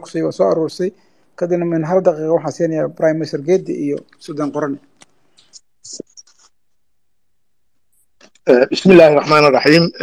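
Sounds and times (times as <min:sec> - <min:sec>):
faint scratching and clicking: 0:00.0 - 0:07.0, 0:07.7 - 0:08.6.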